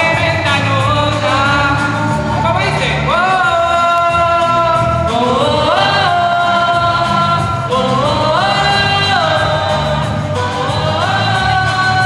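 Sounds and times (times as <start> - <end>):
pulsing bass line: 0.0 - 12.0.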